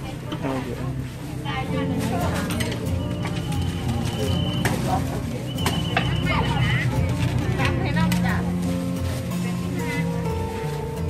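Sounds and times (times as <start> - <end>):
people talking: 0.0 - 2.9, 3.8 - 8.5
background music: 0.0 - 11.0.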